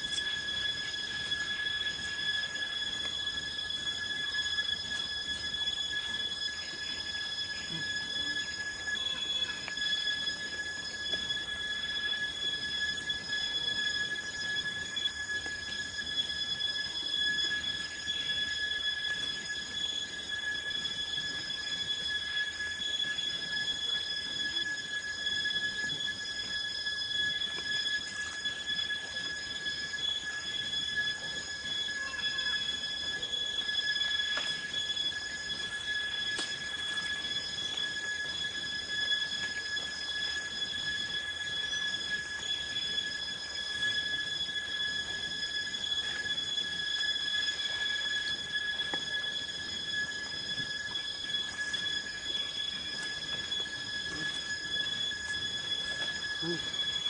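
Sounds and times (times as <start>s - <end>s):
steady high-pitched whine: 0.0s - 57.0s.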